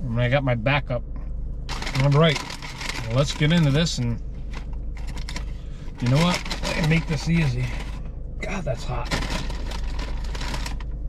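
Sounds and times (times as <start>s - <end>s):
steady low hum: 0.0s - 11.0s
paper wrapping crinkling: 1.7s - 7.9s, 9.1s - 10.9s.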